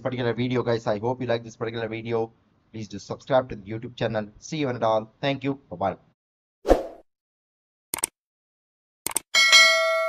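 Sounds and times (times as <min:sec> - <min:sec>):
notification bell ding: 0:09.4 - 0:10.0.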